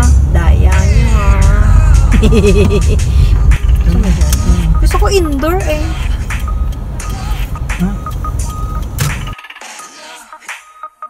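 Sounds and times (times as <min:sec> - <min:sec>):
car engine and cabin rumble: 0:00.0 - 0:09.4
high beep: 0:03.7 - 0:09.4.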